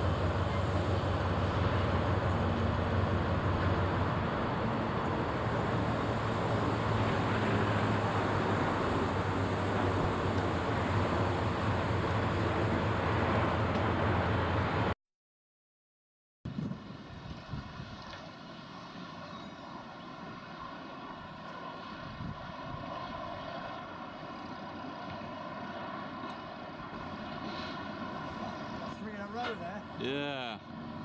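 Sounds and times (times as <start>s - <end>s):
diesel locomotive engine droning: 0.0s - 15.0s, 16.7s - 31.0s.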